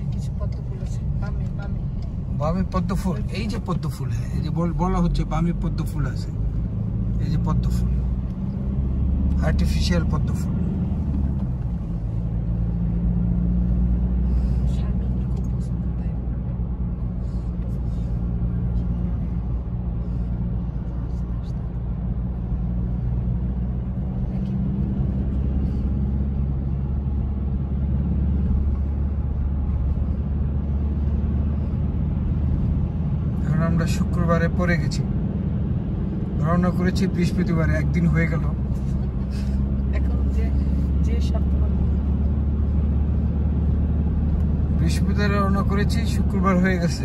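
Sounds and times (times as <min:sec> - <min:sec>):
car engine and tyres rumbling: 0:00.0 - 0:47.0.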